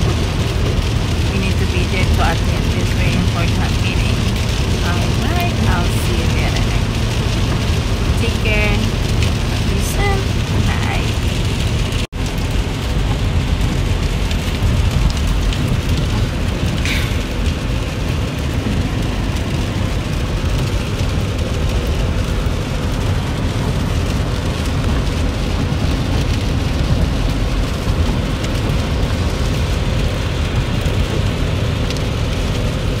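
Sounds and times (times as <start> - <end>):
low rumble: 0.0 - 33.0
rain on car body: 0.0 - 33.0
tyres on wet pavement: 0.0 - 33.0.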